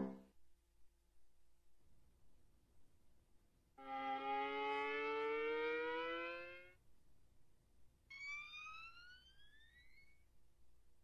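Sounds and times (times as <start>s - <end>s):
thin tone gliding upward: 8.1s - 10.2s.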